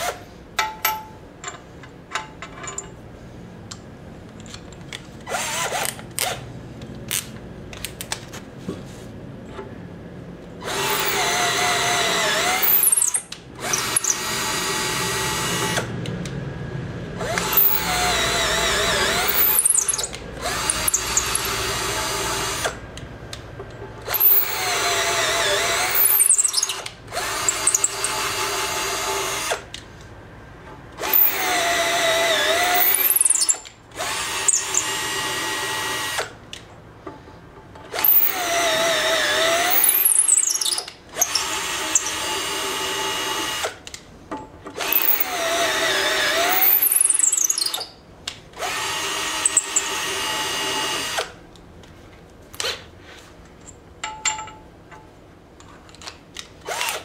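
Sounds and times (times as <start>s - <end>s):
electric drill boring into metal: 10.7s - 15.9s, 17.2s - 22.8s, 24.1s - 29.6s, 31.0s - 36.3s, 37.9s - 43.8s, 44.8s - 47.9s, 48.6s - 51.3s, 56.7s - 57.0s.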